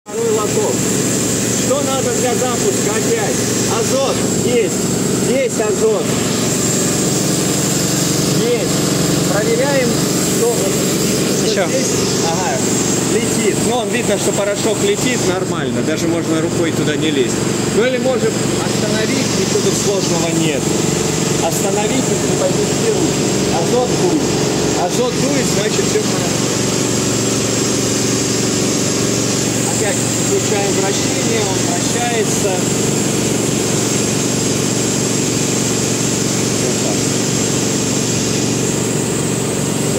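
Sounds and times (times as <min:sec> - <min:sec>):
gas rushing through spray gun: 0:00.1 - 0:39.9.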